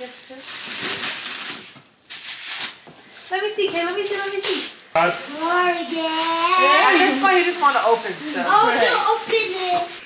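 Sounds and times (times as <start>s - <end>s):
wrapping paper tearing: 0.0s - 10.0s.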